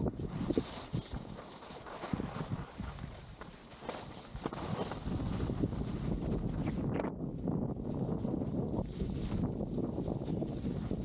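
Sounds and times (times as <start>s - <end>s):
skis scraping over snow: 0.0s - 6.9s, 7.8s - 11.0s
wind rumbling on microphone: 0.0s - 11.0s.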